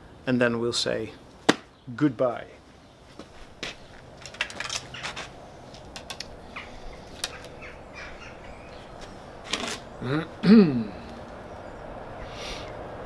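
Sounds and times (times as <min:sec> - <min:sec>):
faint clicks taps and rustles: 0:03.6 - 0:06.3.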